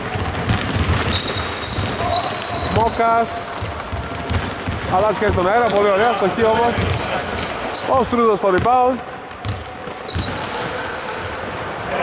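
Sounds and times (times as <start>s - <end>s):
footwork on hardwood court: 0.0s - 12.0s
high shoe squeak: 0.2s - 10.6s
basketball thuds: 6.6s - 7.1s, 9.4s - 10.4s.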